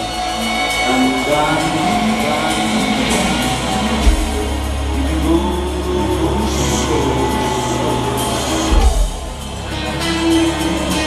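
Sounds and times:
bass guitar: 0:00.0 - 0:11.0
electric guitar: 0:00.0 - 0:11.0
live hard rock band: 0:00.0 - 0:11.0.

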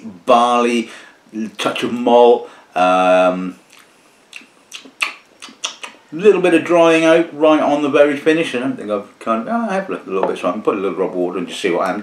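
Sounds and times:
person speaking: 0:04.4 - 0:12.0.

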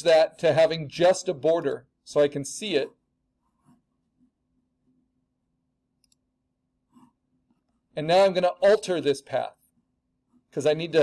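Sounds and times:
computer mouse clicks: 0:06.0 - 0:06.3.

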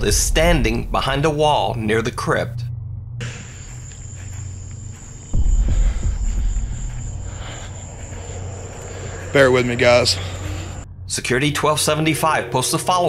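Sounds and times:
microphone rumbling thump: 0:00.0 - 0:03.8, 0:05.3 - 0:08.0
background music drone: 0:00.0 - 0:13.0
high-pitched whine: 0:00.0 - 0:13.0.

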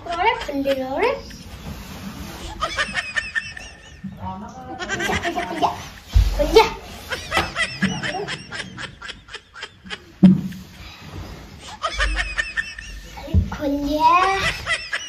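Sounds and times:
laughter in bursts: 0:02.4 - 0:06.2, 0:06.9 - 0:10.7, 0:11.6 - 0:13.2, 0:14.2 - 0:15.0.

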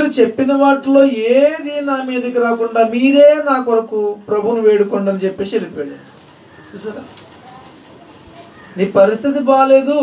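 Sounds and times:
faint low bird cooing: 0:05.9 - 0:09.0.

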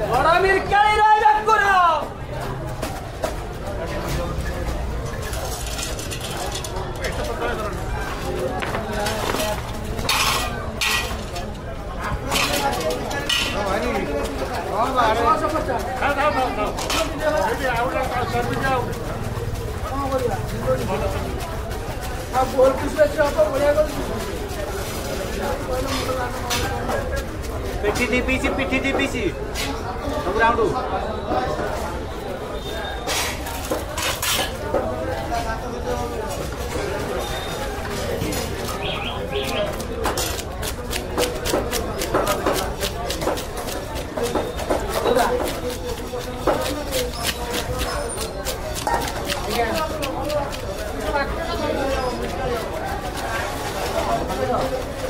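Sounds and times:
knife scraping and clinking: 0:10.0 - 0:11.4, 0:12.3 - 0:13.8, 0:33.1 - 0:34.7.

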